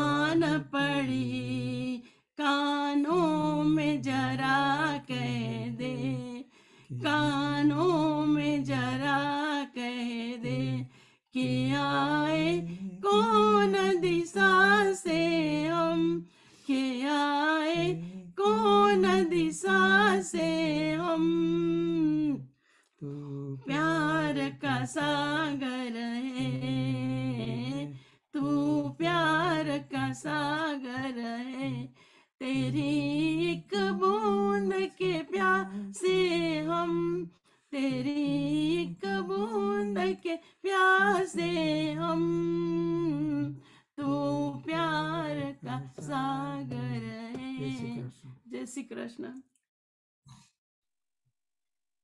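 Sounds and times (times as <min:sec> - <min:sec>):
woman singing unaccompanied: 0:00.0 - 0:22.4, 0:23.6 - 0:49.4.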